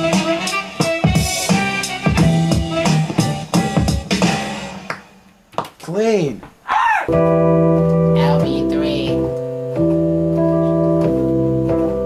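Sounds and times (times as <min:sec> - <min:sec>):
low synth notes: 0:07.1 - 0:12.0.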